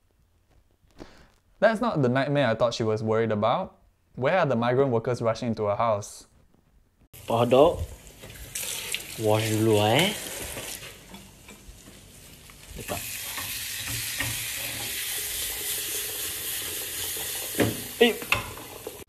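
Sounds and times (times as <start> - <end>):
hot dogs sizzling in a pan: 7.2 - 19.0.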